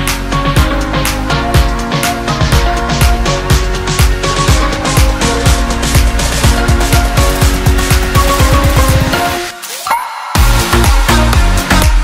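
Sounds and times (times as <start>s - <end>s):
electronic music: 0.0s - 12.0s
deep kick drums: 1.5s - 9.2s, 10.4s - 12.0s.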